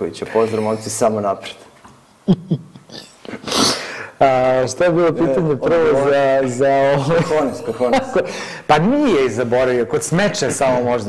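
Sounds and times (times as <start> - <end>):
man chuckling: 2.2 - 3.8, 6.9 - 8.6
breathy exhale: 3.5 - 4.2.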